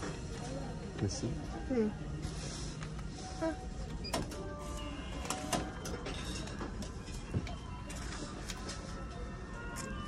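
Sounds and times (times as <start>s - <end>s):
ticket machine printing: 3.4s - 10.0s.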